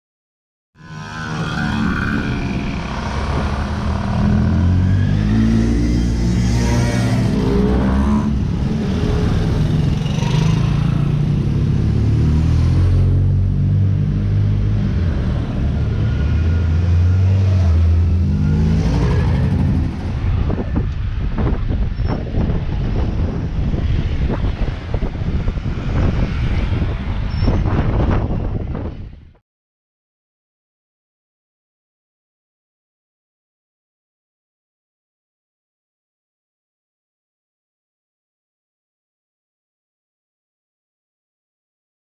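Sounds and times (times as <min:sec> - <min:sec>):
motorbikes riding past: 0:00.8 - 0:29.1.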